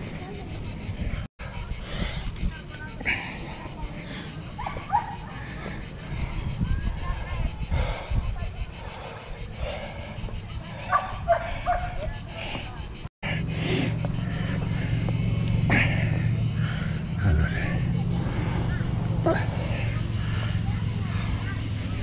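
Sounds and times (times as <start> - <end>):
faint distant voices: 0.0 - 22.0
steady low hum: 0.0 - 22.0.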